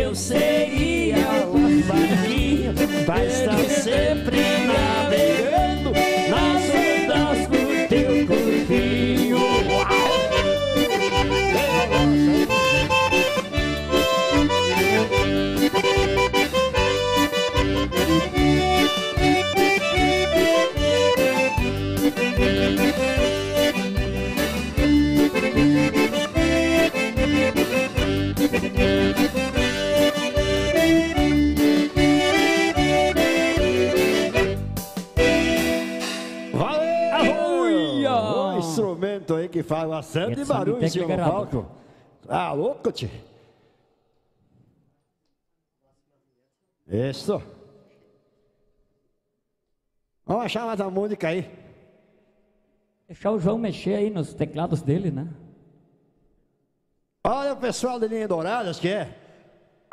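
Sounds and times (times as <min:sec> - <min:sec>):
accordion dance music: 0:00.0 - 0:38.8
keyboard backing: 0:00.0 - 0:39.2
steady bass beat: 0:08.0 - 0:16.2.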